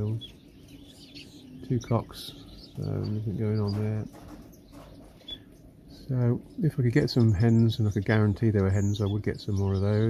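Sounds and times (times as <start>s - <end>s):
finches chirping: 0.0s - 10.0s.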